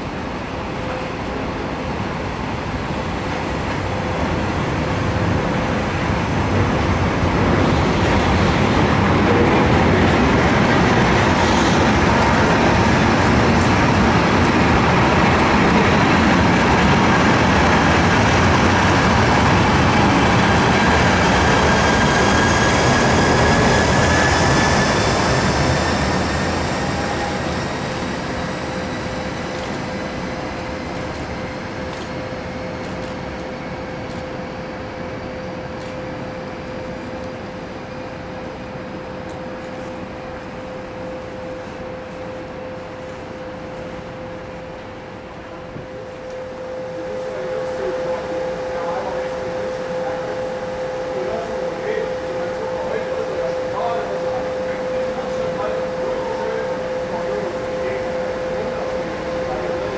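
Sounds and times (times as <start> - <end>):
freight train rolling on rails: 0.0 - 59.9.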